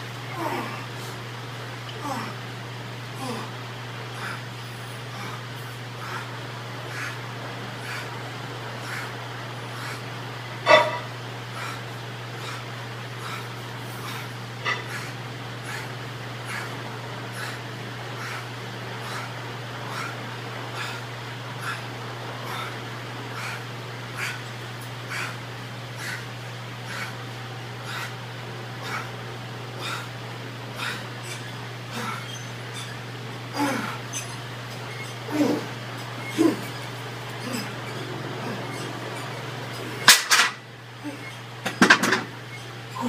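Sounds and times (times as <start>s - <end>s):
steady low hum: 0.0s - 43.0s
man grunting with effort: 0.3s - 1.2s, 1.9s - 2.5s, 3.1s - 6.3s, 33.5s - 34.2s, 35.2s - 36.8s, 37.4s - 40.0s.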